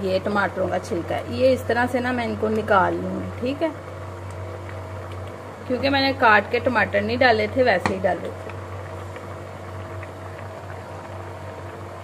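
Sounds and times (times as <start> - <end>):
low even hum: 0.0 - 12.0
curry bubbling and crackling: 0.2 - 12.0.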